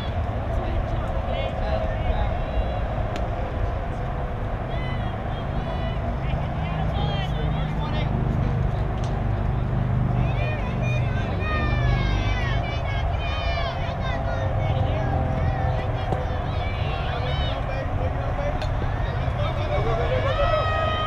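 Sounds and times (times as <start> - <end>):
high-pitched voices calling out: 10.2 - 17.7.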